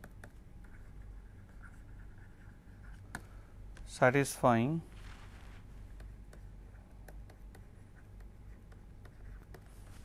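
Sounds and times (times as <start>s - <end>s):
stylus scratching on screen: 0.2s - 3.1s, 4.9s - 10.0s
stylus tapping: 5.8s - 9.8s.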